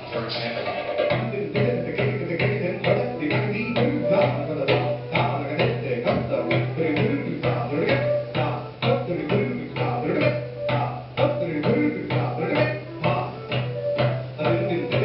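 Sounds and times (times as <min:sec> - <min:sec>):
tabla playing rapidly: 0:00.0 - 0:15.0.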